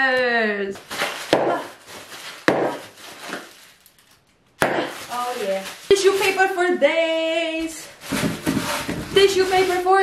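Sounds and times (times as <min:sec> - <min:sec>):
plastic bag crinkling: 0:00.8 - 0:10.0.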